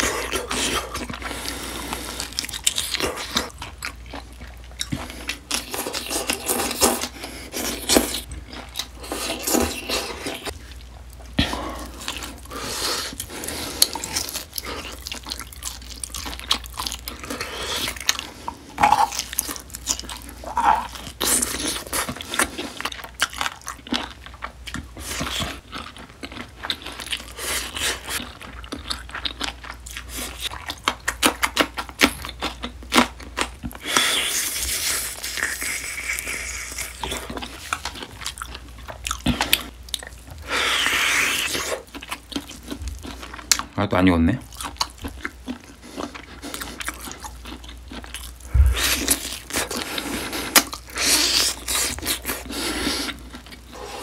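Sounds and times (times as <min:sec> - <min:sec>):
chewing and biting meat: 0:00.0 - 0:43.8, 0:44.4 - 0:54.0.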